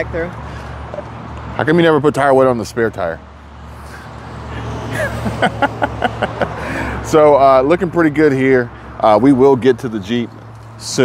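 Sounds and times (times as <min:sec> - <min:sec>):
low rumble of road traffic: 0:00.0 - 0:11.0
person laughing quietly: 0:04.6 - 0:06.9.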